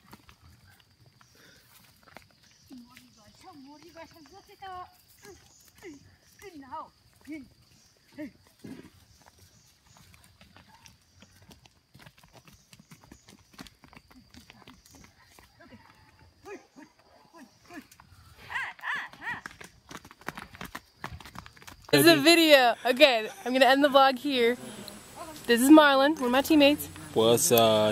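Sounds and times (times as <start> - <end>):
cattle hooves clopping: 0.0 - 27.9
person speaking: 21.9 - 27.9.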